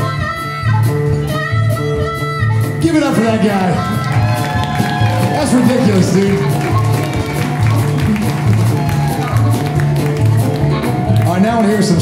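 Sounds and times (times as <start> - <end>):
upright bass notes: 0.0 - 12.0.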